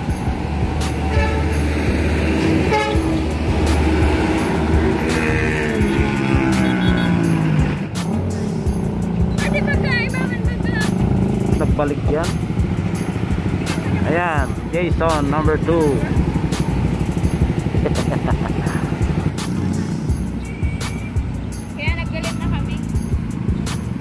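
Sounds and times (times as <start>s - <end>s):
engine pitch falling: 0.0s - 24.0s
vehicle engines running: 0.0s - 24.0s.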